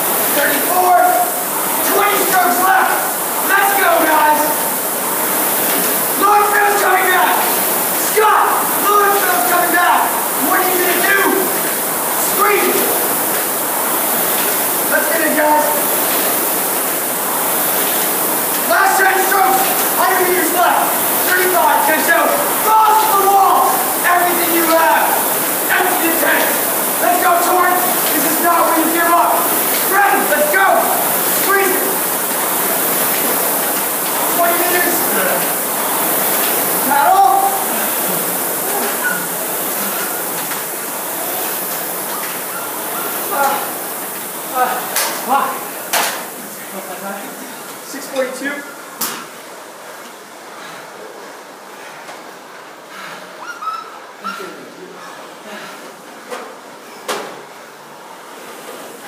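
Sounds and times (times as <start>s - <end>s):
rowing machine flywheels whirring: 0.0s - 48.4s
indistinct overlapping voices: 0.0s - 48.9s.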